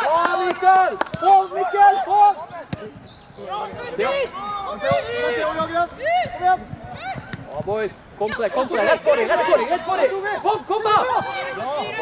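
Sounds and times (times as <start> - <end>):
people shouting encouragement: 0.0 - 2.7, 3.4 - 7.6, 8.2 - 12.0
football being kicked: 4.8 - 7.8.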